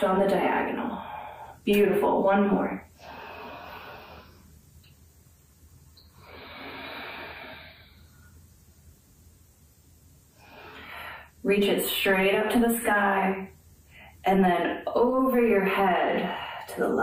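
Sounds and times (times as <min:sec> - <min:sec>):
woman breathing: 0:00.9 - 0:01.6, 0:02.9 - 0:04.6, 0:06.1 - 0:08.4, 0:10.3 - 0:11.4, 0:13.8 - 0:14.2, 0:16.2 - 0:16.8.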